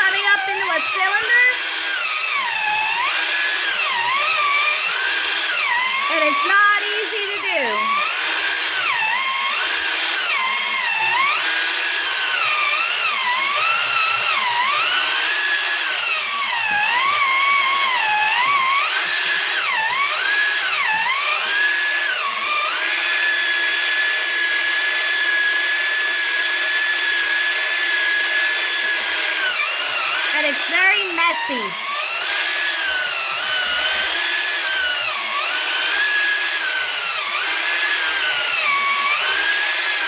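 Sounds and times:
small electric motor whining: 0.0s - 40.0s.

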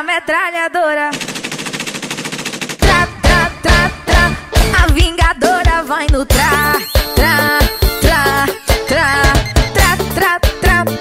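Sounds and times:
machine-gun sound effect: 1.1s - 3.9s
dance music drum beat: 2.8s - 11.0s.

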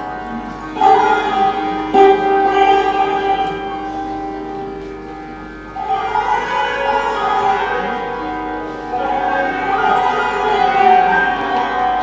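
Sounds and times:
santoor strings ringing: 0.0s - 12.0s.

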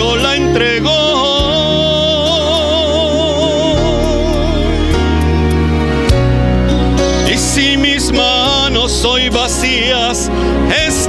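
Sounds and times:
solo voice singing: 0.0s - 5.6s, 7.2s - 11.0s
sustained instrumental accompaniment: 0.0s - 11.0s.

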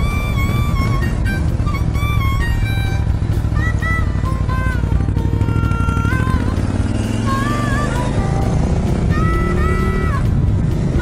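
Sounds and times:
background music gliding melody: 0.0s - 11.0s
motorcycle engine running: 0.0s - 11.0s.

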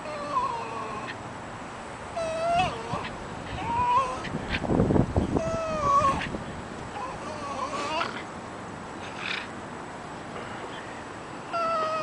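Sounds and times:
small dog whining and squealing: 0.0s - 1.2s, 2.2s - 4.6s, 5.3s - 6.3s, 7.0s - 8.3s, 11.5s - 12.0s.

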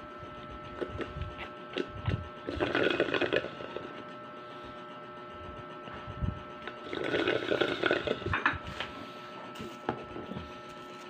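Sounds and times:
person slurping tea: 2.5s - 3.8s, 6.8s - 8.9s.

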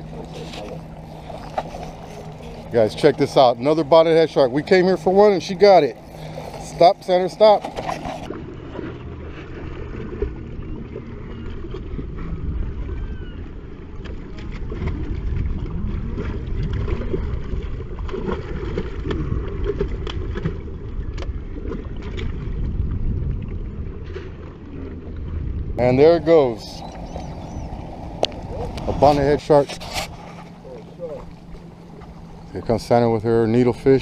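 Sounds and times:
wind rumbling on microphone: 7.6s - 31.4s.

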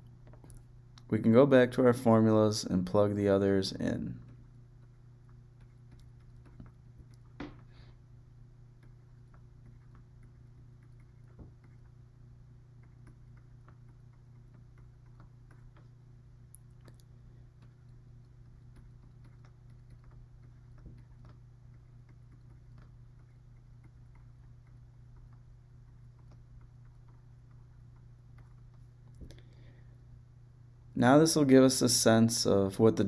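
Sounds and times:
low electrical hum: 0.0s - 33.0s.

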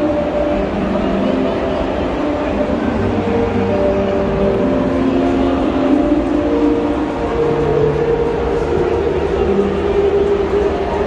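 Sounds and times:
din of busy exhibition hall: 0.0s - 11.0s
music over loudspeakers: 0.0s - 11.0s.

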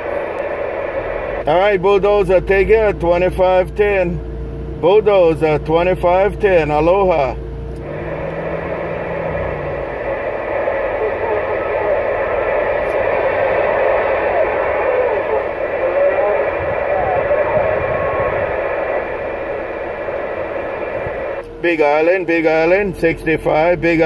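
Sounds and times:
radio static hiss: 0.0s - 4.1s, 7.8s - 24.0s
garbled distant voice on radio: 9.9s - 21.7s.

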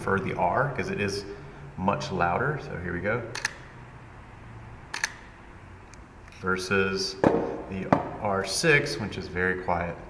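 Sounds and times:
camera shutter clicking: 3.4s - 3.7s, 4.9s - 5.3s.

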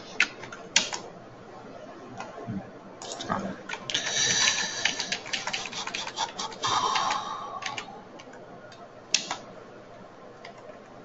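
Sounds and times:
computer keyboard typing: 0.2s - 1.0s, 3.0s - 9.4s.

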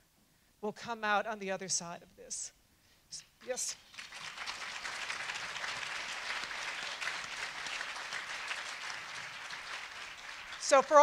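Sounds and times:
audience applauding: 3.8s - 11.0s.

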